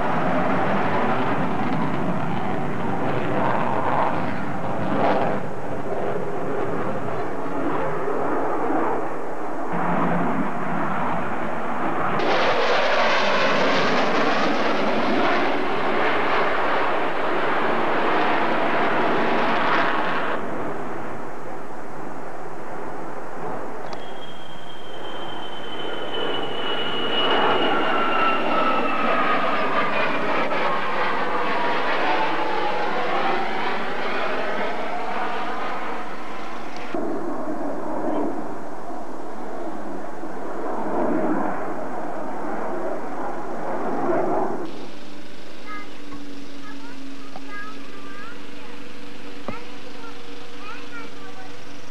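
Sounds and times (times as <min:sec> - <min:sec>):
aircraft engine rushing overhead: 0:00.0 - 0:51.9
aircraft whine sliding down: 0:00.0 - 0:51.9.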